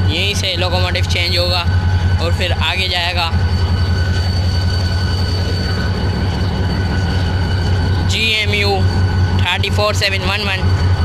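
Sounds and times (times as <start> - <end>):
locomotive engine rumble: 0.0 - 11.0
steady high whine: 0.0 - 11.0.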